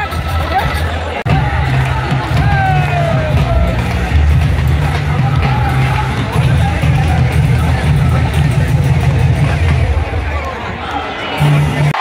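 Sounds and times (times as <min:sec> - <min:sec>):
music over loudspeakers with heavy bass: 0:00.0 - 0:10.3, 0:11.4 - 0:12.0
large crowd noise: 0:00.0 - 0:12.0.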